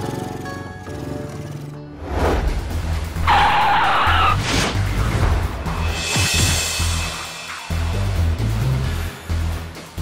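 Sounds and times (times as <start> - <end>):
background music: 0.0 - 10.0
tyres screeching: 3.2 - 4.4.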